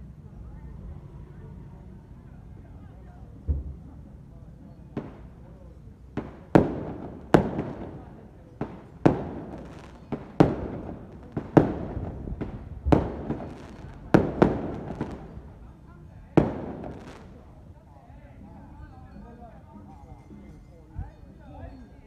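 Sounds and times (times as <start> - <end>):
firecracker bangs echoing: 4.9 - 15.7, 16.3 - 17.6.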